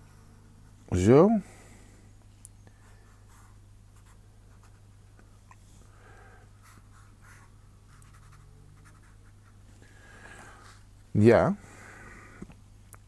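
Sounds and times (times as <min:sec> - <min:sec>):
pen scratching on paper: 0:06.6 - 0:09.6.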